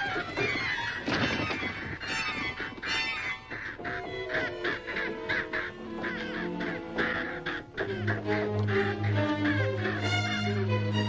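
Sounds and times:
crows cawing: 0:00.0 - 0:11.0
orchestral film score: 0:00.0 - 0:11.0.

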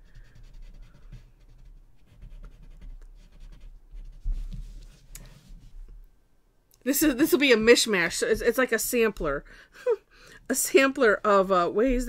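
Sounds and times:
soft scratchy strokes on paper: 0:00.0 - 0:06.1.

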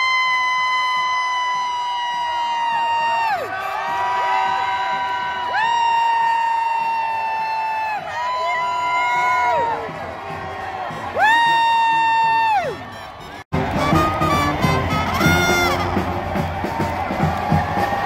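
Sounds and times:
crowd cheering: 0:00.0 - 0:18.0
horns blowing long blasts: 0:03.4 - 0:05.4, 0:12.8 - 0:17.9.

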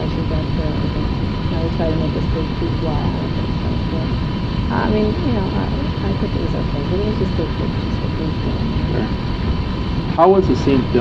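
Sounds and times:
faint voices: 0:00.0 - 0:09.2, 0:10.1 - 0:11.0
low rumble of background noise: 0:00.0 - 0:11.0.

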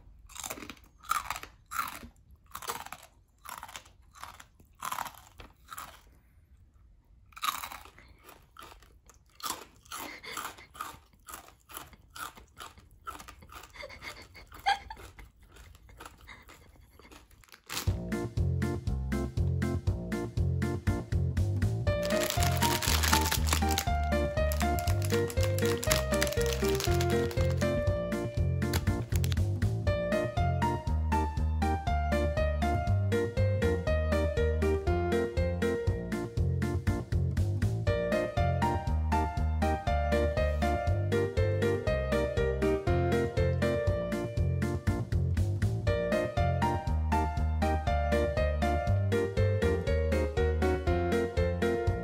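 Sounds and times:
rice cracker crunching: 0:00.3 - 0:06.2, 0:07.3 - 0:18.0, 0:21.9 - 0:27.8, 0:28.6 - 0:29.5
plastic wrappers crinkling: 0:17.1 - 0:17.9, 0:21.9 - 0:27.8, 0:28.7 - 0:29.4
music with plucked notes and bass: 0:17.9 - 0:22.6, 0:27.1 - 0:52.0.

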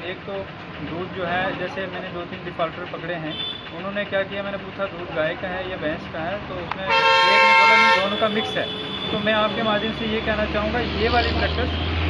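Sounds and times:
people talking: 0:00.0 - 0:11.8
vehicle engine rumbling: 0:00.0 - 0:12.0.

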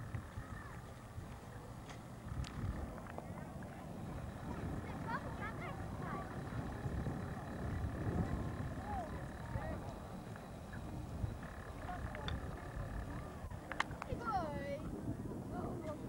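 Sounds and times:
faint indistinct voices: 0:00.0 - 0:16.0
wind rumbling on microphone: 0:00.0 - 0:16.0.

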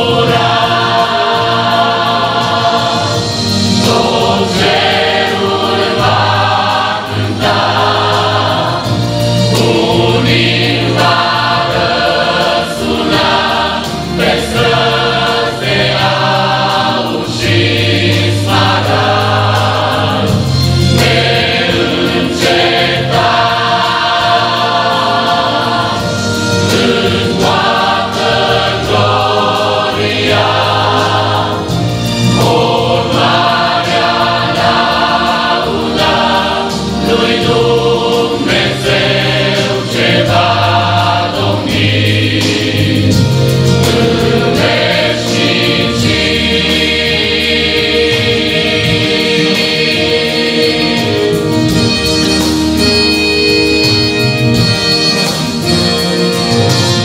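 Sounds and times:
mixed choir singing a hymn: 0:00.0 - 0:57.0.

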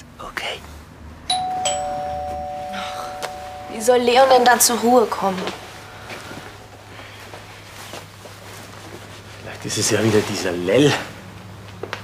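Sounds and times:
two-tone doorbell chime: 0:01.3 - 0:06.9.

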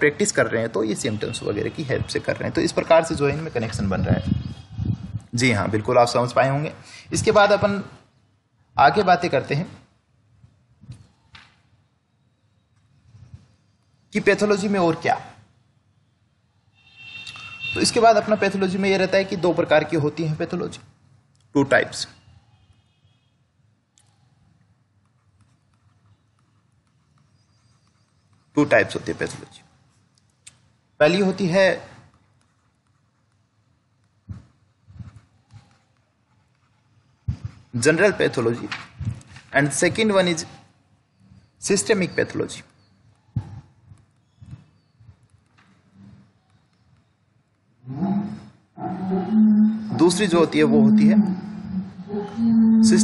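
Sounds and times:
man speaking: 0:00.0 - 0:04.3, 0:17.8 - 0:20.8, 0:28.6 - 0:29.6, 0:37.8 - 0:38.8, 0:49.9 - 0:51.7, 0:52.8 - 0:53.0
man's drawn-out vocal sound: 0:48.0 - 0:53.0.

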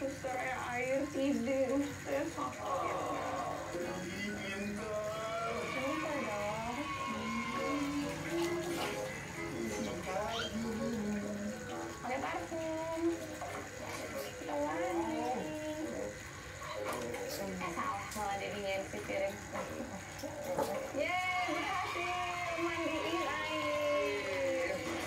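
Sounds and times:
television music and voices: 0:00.0 - 0:25.0.

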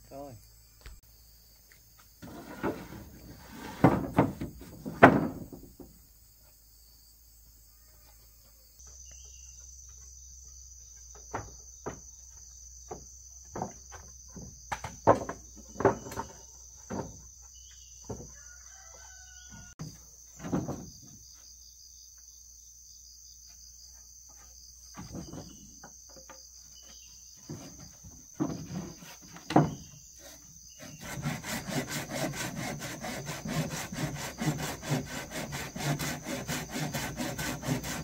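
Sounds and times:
wooden planks knocking: 0:02.2 - 0:06.0, 0:11.1 - 0:17.3, 0:20.4 - 0:21.2, 0:24.9 - 0:26.4, 0:27.4 - 0:30.0
faint chicken call: 0:18.3 - 0:19.8.

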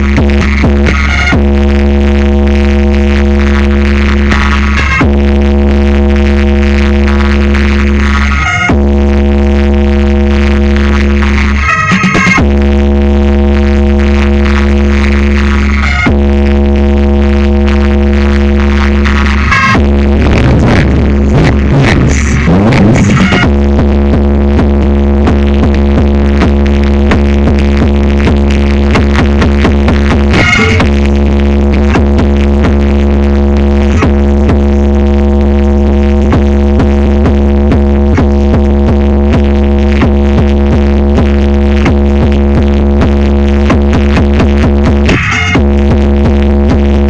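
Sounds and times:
loud electronic dance music: 0:00.0 - 0:47.0.

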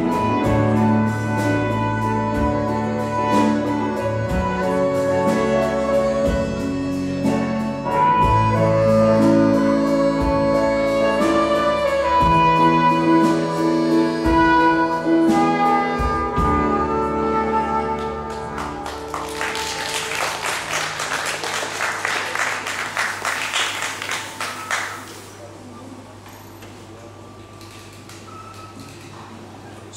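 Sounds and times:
trumpet melody: 0:00.0 - 0:21.6.

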